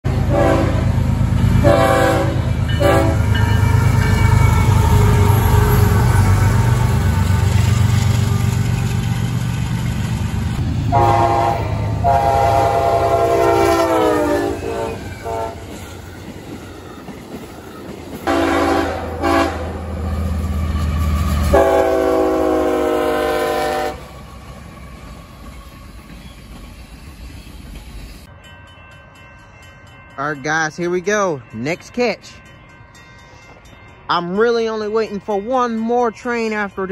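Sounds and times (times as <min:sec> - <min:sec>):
passing train rumble: 0:00.0 - 0:36.9
locomotive air horn blasts: 0:00.1 - 0:00.9, 0:01.6 - 0:03.3, 0:10.9 - 0:15.7, 0:18.3 - 0:19.8, 0:21.5 - 0:24.1.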